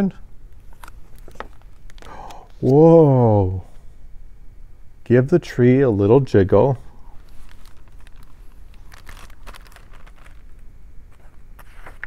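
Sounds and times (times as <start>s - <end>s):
book rustling: 0.6s - 2.4s, 7.2s - 12.0s.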